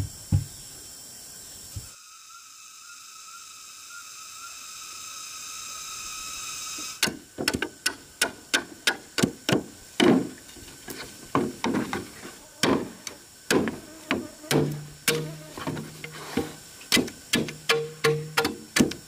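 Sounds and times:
blade chopping bamboo: 0:07.0 - 0:10.4, 0:11.4 - 0:19.0.

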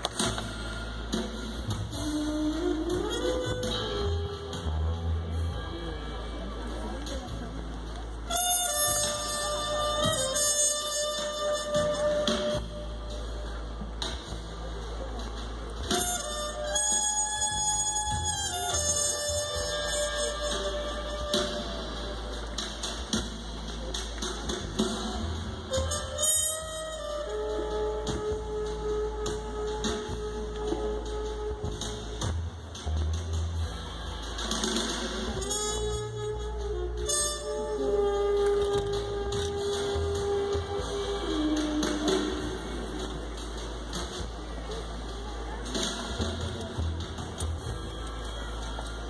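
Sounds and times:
distant live music: 0:00.0 - 0:49.0.

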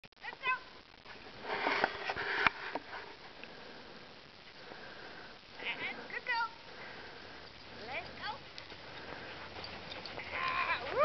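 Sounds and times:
breathy sniffing: 0:06.6 - 0:11.0.

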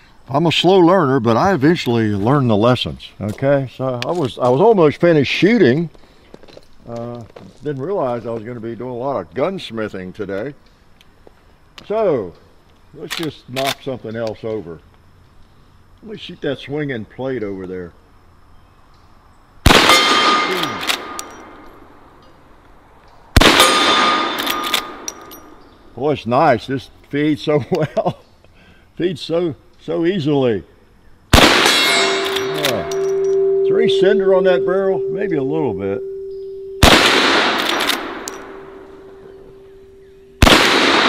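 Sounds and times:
rifle shots: 0:19.7 - 0:21.6, 0:23.4 - 0:25.1, 0:31.3 - 0:33.3, 0:36.8 - 0:38.8, 0:40.4 - 0:41.0
steel plate ringing: 0:19.8 - 0:21.8, 0:23.5 - 0:25.7, 0:31.6 - 0:40.4
sharp clicks: 0:32.2 - 0:33.4, 0:36.8 - 0:38.6
rifle lever clicks: 0:37.6 - 0:38.4.

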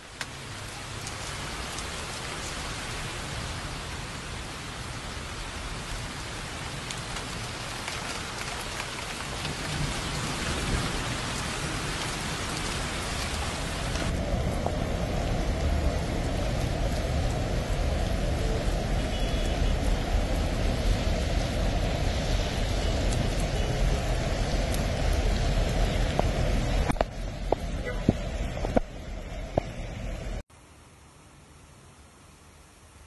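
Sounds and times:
heavy rain on wet paving: 0:00.0 - 0:33.0.

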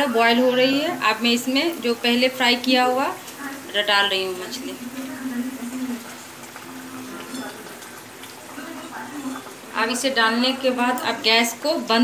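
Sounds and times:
gravy bubbling in a wok: 0:00.0 - 0:12.0.

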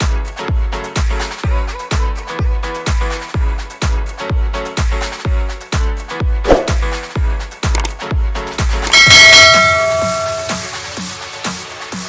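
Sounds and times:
bell chime ringing: 0:08.9 - 0:10.8.

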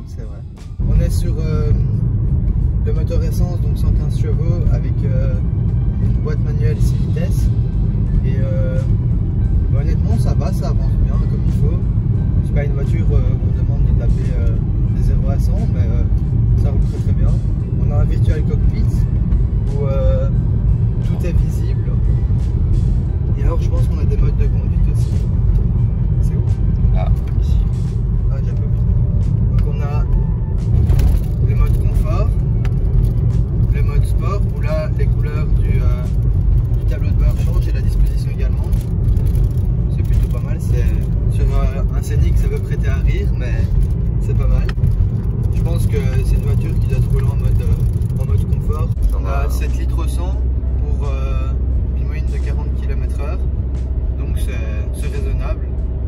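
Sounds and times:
car cabin road and engine rumble: 0:00.0 - 0:56.0.

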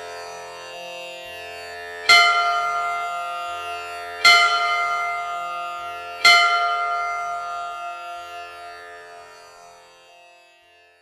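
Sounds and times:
plucked-string devotional music: 0:00.0 - 0:11.0
bell strikes ringing: 0:02.1 - 0:09.1.

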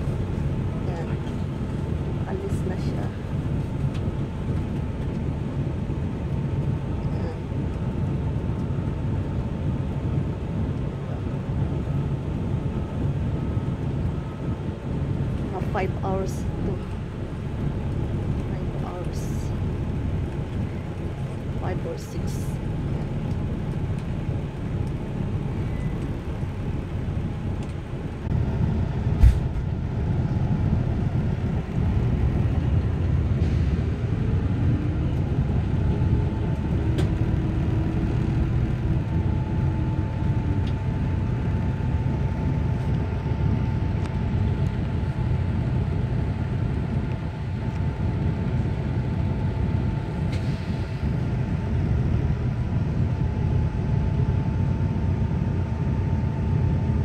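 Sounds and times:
bus engine rumbling: 0:00.0 - 0:57.0
steady high whine: 0:00.0 - 0:57.0.

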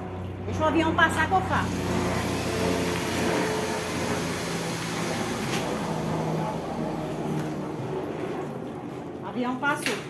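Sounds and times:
aeroplane engine drone: 0:00.0 - 0:10.0.

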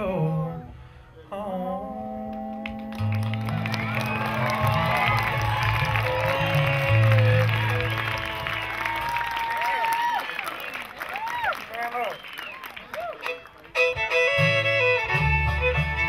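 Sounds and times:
upright bass: 0:00.0 - 0:09.3, 0:13.3 - 0:16.0
audience applauding and cheering: 0:02.9 - 0:13.8
bluegrass band playing: 0:03.0 - 0:09.2, 0:13.0 - 0:16.0
fiddle: 0:13.0 - 0:16.0.

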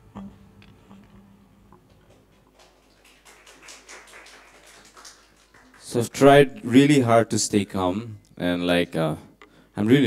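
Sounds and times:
hands clapping quickly: 0:01.9 - 0:06.2.

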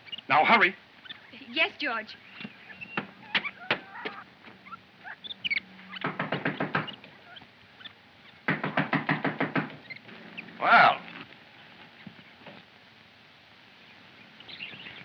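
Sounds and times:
knocking on wooden door: 0:06.0 - 0:06.9, 0:08.5 - 0:09.8.

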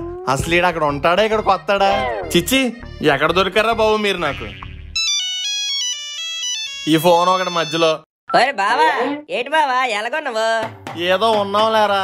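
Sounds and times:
man speaking: 0:00.3 - 0:04.6
phone ringtone melody: 0:04.0 - 0:08.0.

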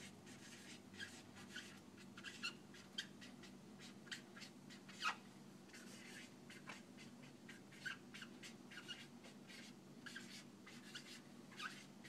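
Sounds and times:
marker squeaking on whiteboard: 0:00.0 - 0:12.0.

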